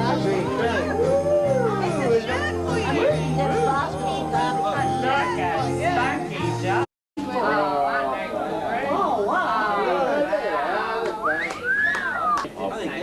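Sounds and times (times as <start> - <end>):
sliding whistled note: 11.2 - 12.4.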